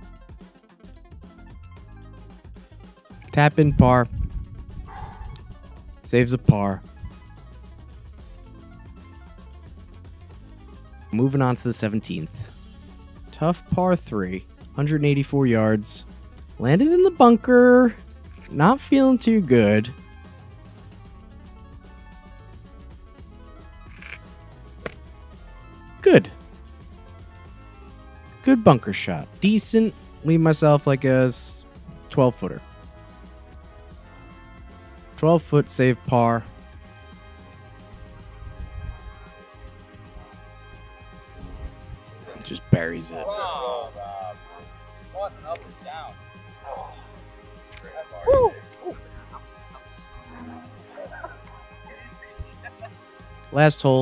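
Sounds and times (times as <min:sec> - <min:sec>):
background music: 0:00.0 - 0:54.0
people shouting excitedly: 0:42.3 - 0:52.7.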